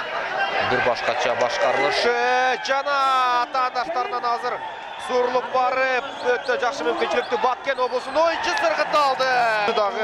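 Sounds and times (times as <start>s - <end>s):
sports commentator talking fast: 0.3s - 10.0s.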